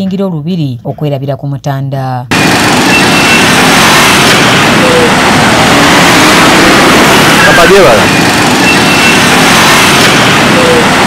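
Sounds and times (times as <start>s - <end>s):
minibus engines: 2.3s - 11.0s
motorcycle engines: 2.3s - 11.0s.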